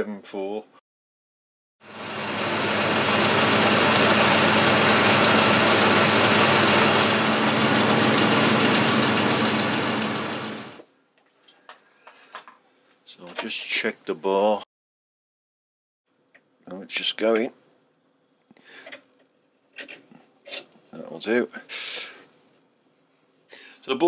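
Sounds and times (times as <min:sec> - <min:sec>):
lathe running with high whine: 0:01.8 - 0:10.8.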